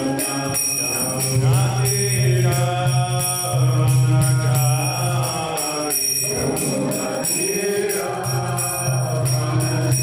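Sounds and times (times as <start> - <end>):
high ringing tones: 0.0 - 10.0.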